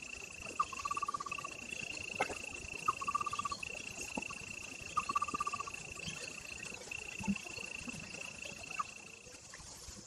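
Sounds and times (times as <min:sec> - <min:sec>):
high-pitched insect buzz: 0:00.0 - 0:09.4.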